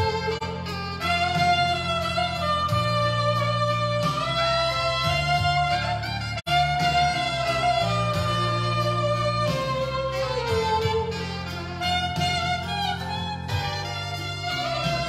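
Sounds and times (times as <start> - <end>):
backing track with bass line: 0.0 - 15.0
saxophone melody: 0.0 - 15.0.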